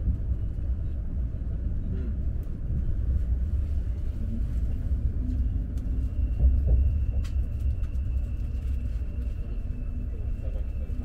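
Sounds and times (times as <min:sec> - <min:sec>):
train rumbling on track: 0:00.0 - 0:11.0.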